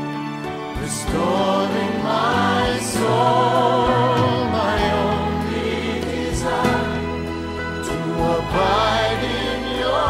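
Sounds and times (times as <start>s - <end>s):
choir singing: 0.7s - 10.0s.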